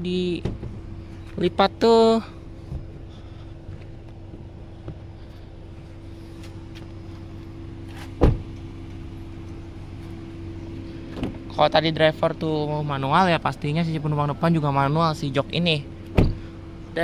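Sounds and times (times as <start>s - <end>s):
steady low hum: 0.0s - 17.0s
car door shutting: 2.6s - 3.0s, 7.8s - 8.7s, 11.1s - 11.5s, 16.0s - 16.5s.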